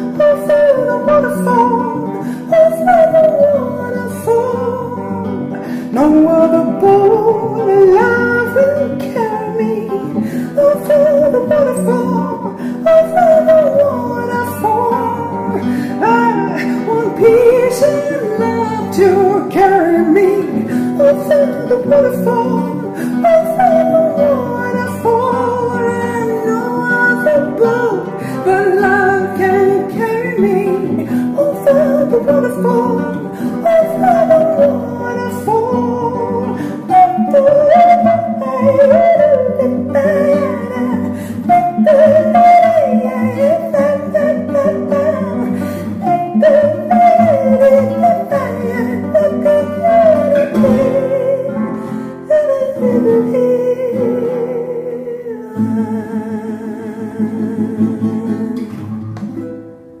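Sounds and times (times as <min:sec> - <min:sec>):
woman singing: 0:00.0 - 0:59.0
acoustic guitar: 0:00.0 - 1:00.0.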